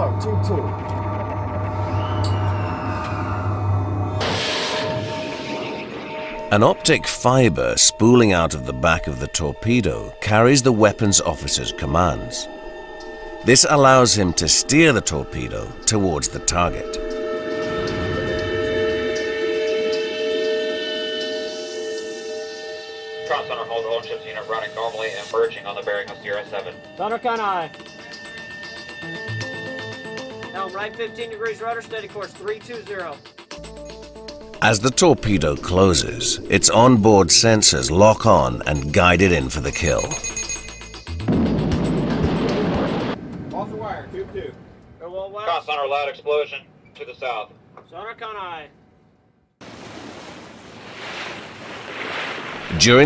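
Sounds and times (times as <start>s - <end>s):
steady low drone: 0.0s - 25.8s, 33.5s - 42.9s
steady held tone: 0.0s - 25.9s, 33.5s - 41.2s
tense background music: 0.0s - 44.9s
voices talking indistinctly: 13.4s - 17.1s, 34.6s - 40.3s.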